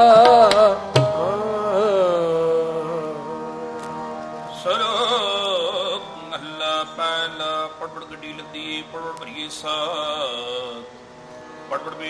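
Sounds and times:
tabla strokes: 0.0s - 1.4s
person singing wavering note: 0.0s - 7.1s
harmonium melody: 0.0s - 12.0s.

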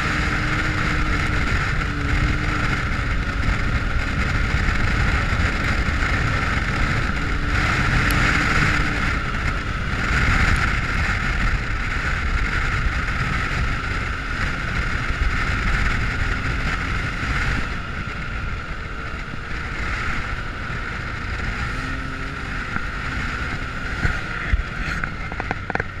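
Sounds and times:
engine running steadily: 0.0s - 26.0s
wind buffeting microphone: 0.0s - 26.0s.

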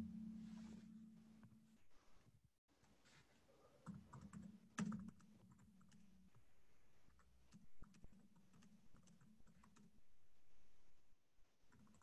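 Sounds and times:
low steady hum: 0.0s - 2.2s
typing on computer keyboard: 3.8s - 6.4s, 7.1s - 10.0s, 11.7s - 12.0s.

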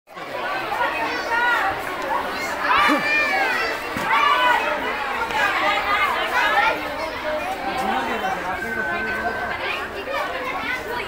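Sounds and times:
children chattering and calling out: 0.1s - 11.0s.

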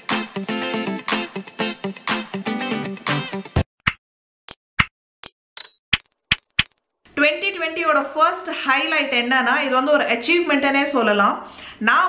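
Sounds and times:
woman talking: 7.2s - 12.0s.

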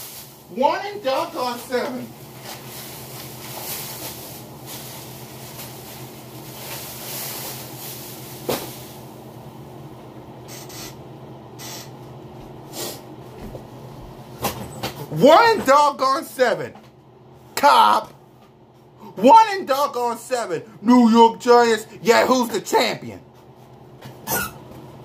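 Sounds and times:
low electrical hum with hiss: 0.0s - 25.0s.

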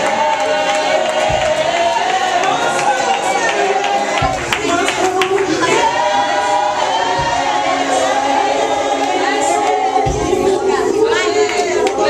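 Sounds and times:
congregation singing unaccompanied: 0.0s - 12.0s.

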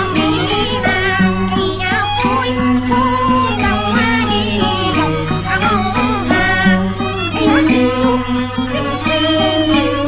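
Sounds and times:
opera singing with ensemble: 0.0s - 10.0s.

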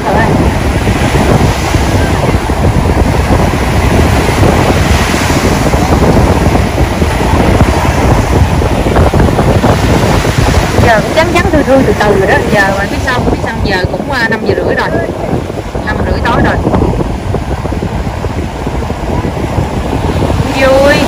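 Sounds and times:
ocean surf breaking: 0.0s - 21.0s
wind buffeting microphone: 0.0s - 21.0s.

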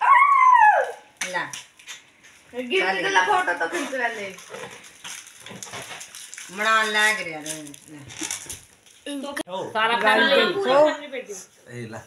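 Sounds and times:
rustling and handling noise: 1.5s - 9.3s
people talking: 9.1s - 12.0s.

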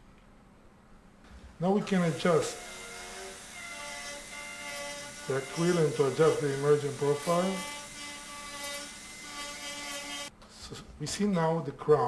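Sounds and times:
dental drill whining: 1.7s - 10.3s.

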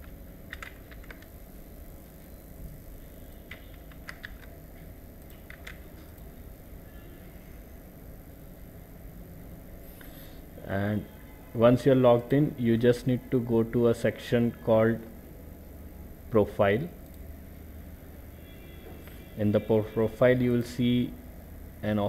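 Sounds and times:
keyboard and mouse clicks: 0.0s - 1.3s, 3.4s - 4.6s, 5.2s - 6.3s
faint low hum: 0.0s - 22.0s.

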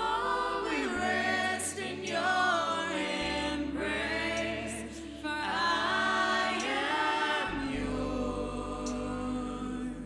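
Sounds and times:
group singing worship song: 0.0s - 10.0s.

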